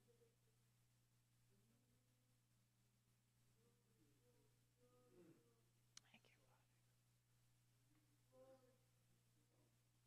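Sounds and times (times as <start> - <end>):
faint electrical hum: 0.0 - 10.0
faint breathy voice: 3.5 - 6.8, 8.1 - 9.8
soft click: 5.9 - 6.2.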